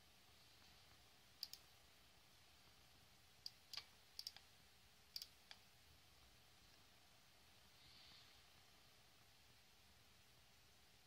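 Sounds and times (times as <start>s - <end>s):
faint mouse clicks: 1.4s - 1.7s, 3.4s - 4.5s, 5.2s - 5.7s.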